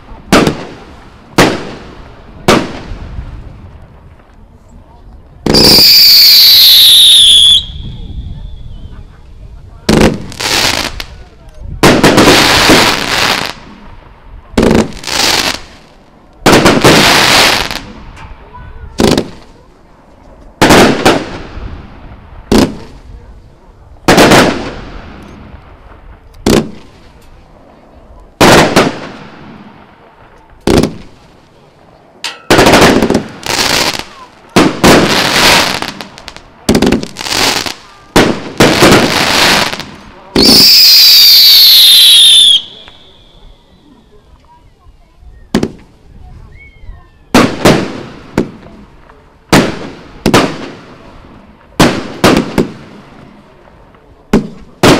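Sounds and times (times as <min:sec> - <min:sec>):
fireworks bangs: 0:00.0 - 0:44.5, 0:45.4 - 0:54.9
crackling fizz of fireworks: 0:00.0 - 0:54.9
firework whistles gliding down: 0:05.5 - 0:09.1, 0:40.4 - 0:44.1.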